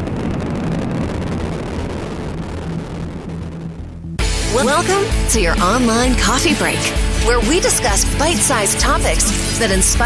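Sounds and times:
rocket engines rumbling: 0.0s - 10.0s.

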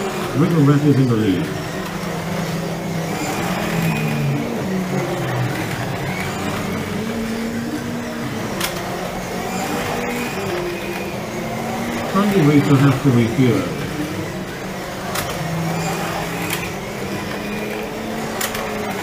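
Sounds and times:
slot car electric motors whining: 0.0s - 19.0s.

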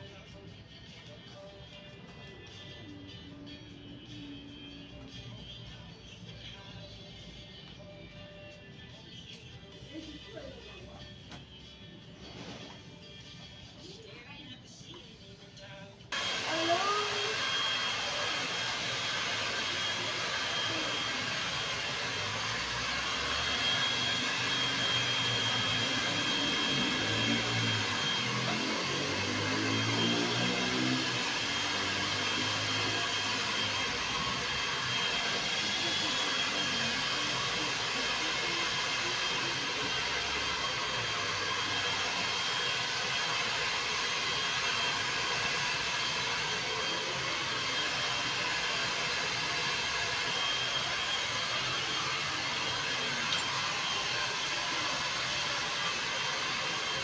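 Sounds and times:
hair dryer blowing: 15.2s - 57.0s
faint indistinct voices: 33.1s - 44.2s.

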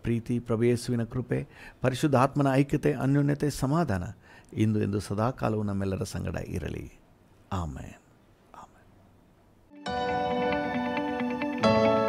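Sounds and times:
man speaking softly: 0.0s - 8.9s.

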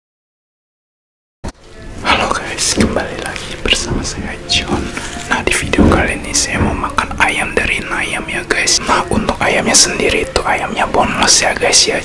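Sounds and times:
man whispering into microphone: 2.0s - 12.0s.

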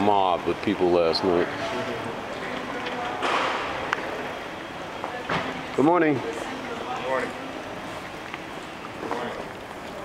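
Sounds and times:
large hall background noise: 0.0s - 10.0s.

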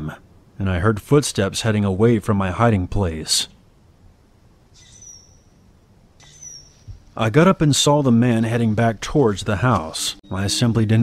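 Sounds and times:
faint forest background: 0.0s - 11.0s
bird whistling high note: 4.8s - 5.6s, 6.2s - 6.9s.

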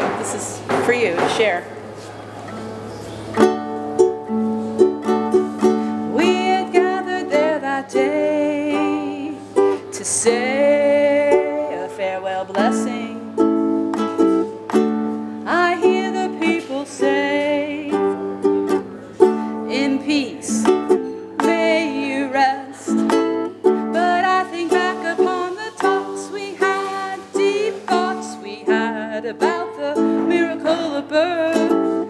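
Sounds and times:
ukulele strumming chords: 2.4s - 32.0s
woman singing with vibrato: 5.8s - 13.6s, 15.4s - 18.6s, 19.2s - 32.0s.

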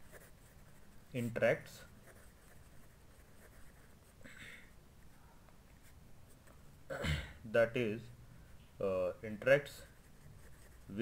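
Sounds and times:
pen scratching on paper: 0.0s - 4.1s, 9.8s - 11.0s.

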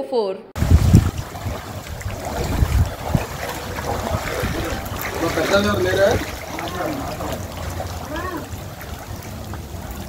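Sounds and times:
water sloshing from wading: 0.6s - 10.0s
wind rumble on microphone: 0.6s - 10.0s.

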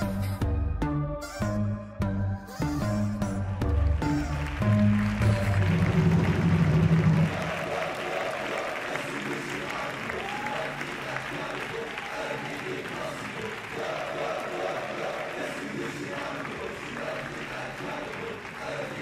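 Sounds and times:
audience applauding: 3.4s - 19.0s
voices and cheers: 3.7s - 19.0s.

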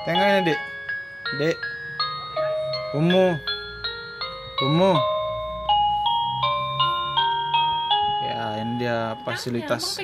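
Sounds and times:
toy chiming electronic melody: 0.0s - 10.0s.

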